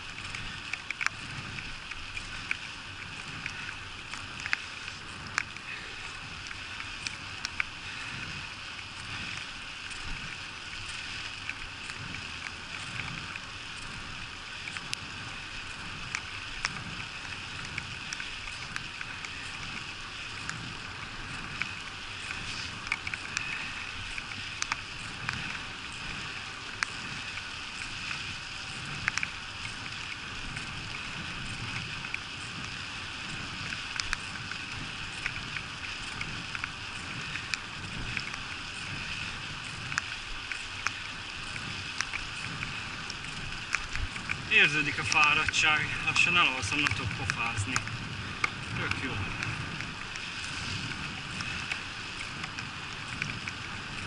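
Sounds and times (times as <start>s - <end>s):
bicycle tyres hissing on wet asphalt: 0.0s - 54.0s
raindrops ticking on camera: 0.0s - 54.0s
wind rumble on microphone: 0.0s - 54.0s.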